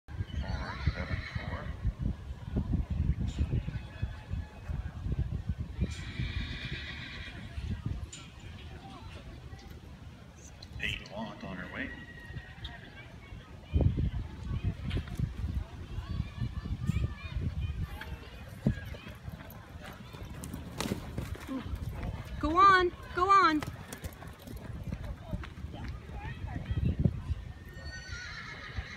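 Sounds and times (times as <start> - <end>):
horse whinnying: 0.4 - 1.8, 5.8 - 7.5, 11.4 - 12.9, 27.8 - 28.9
faint voices: 0.6 - 28.9
horse hooves thudding on dirt: 17.8 - 27.3.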